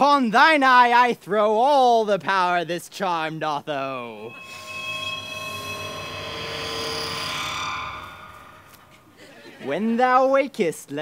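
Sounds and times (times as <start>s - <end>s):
magic spell ringing chord: 4.2s - 9.2s.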